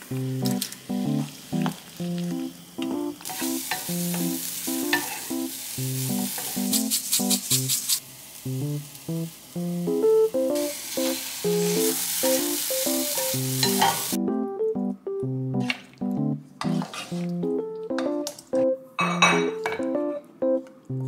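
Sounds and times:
soft background music: 0:00.0 - 0:07.8, 0:08.5 - 0:21.0
broccoli sizzling in frying pan: 0:00.0 - 0:14.2
wooden spatula stirring: 0:16.6 - 0:17.4.

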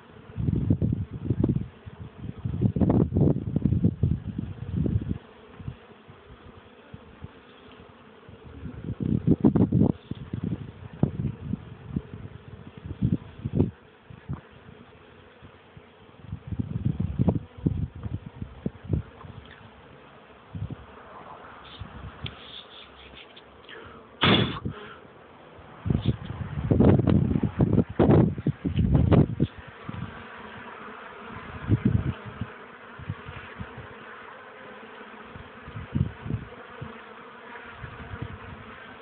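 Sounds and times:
honeybees buzzing: 0:00.0 - 0:39.0.

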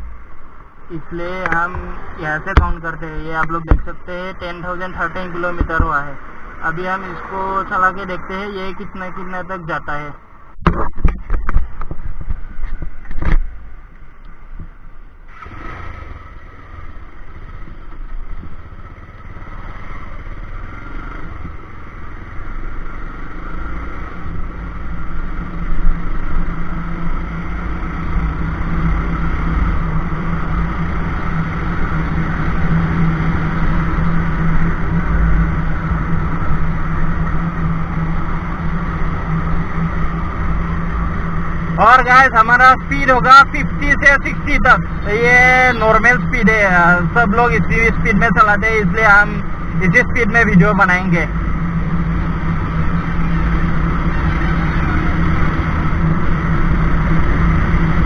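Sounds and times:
motorcycle engine accelerating: 0:14.6 - 0:58.0.

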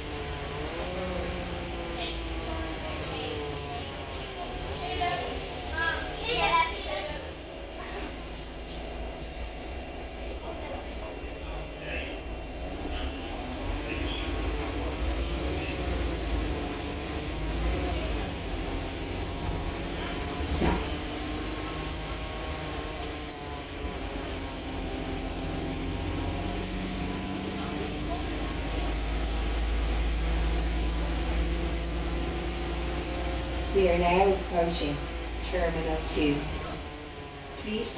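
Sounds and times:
bus engine rumble: 0:00.0 - 0:37.9
drivetrain whine: 0:00.0 - 0:37.9.

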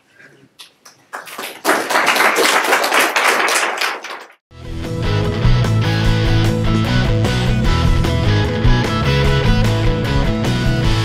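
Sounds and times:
audience applauding: 0:00.8 - 0:04.4
guitar-led rock music: 0:04.5 - 0:11.0.

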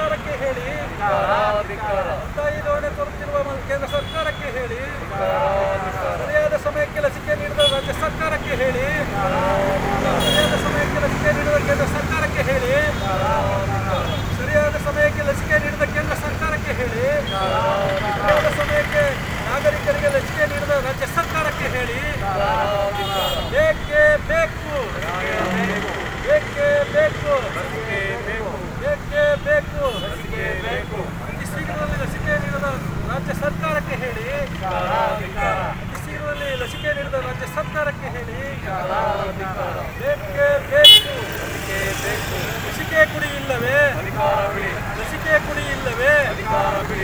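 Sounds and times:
protesters shouting slogans: 0:00.0 - 0:03.0, 0:04.4 - 0:37.1, 0:38.2 - 0:47.0
street traffic hum: 0:00.0 - 0:47.0.

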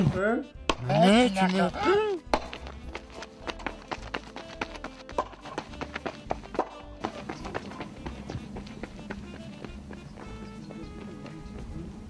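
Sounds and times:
footsteps on gravel: 0:01.5 - 0:11.9
person crying out: 0:01.7 - 0:02.3.

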